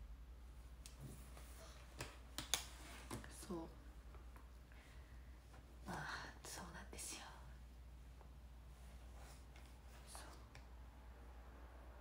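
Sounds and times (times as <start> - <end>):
faint low hum: 0.0 - 12.0
woman whispering: 5.8 - 7.6, 10.0 - 10.5.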